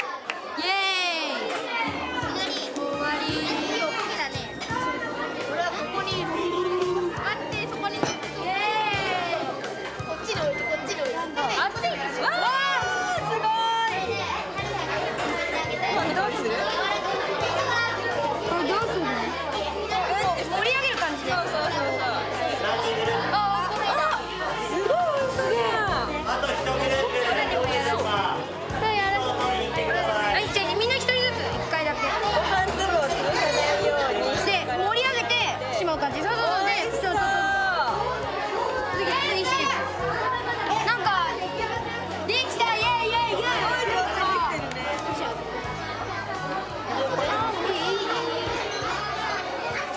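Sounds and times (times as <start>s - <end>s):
children talking excitedly: 0.0s - 49.9s
background music: 0.6s - 49.9s.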